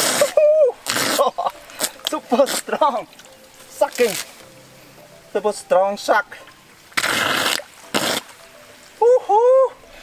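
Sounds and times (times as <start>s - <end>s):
pipe intake slurping water: 0.0s - 3.3s, 6.9s - 8.4s.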